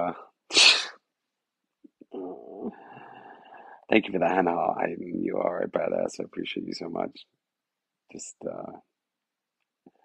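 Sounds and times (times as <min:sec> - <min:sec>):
man's sharp burst of breath: 0:00.5 - 0:01.0.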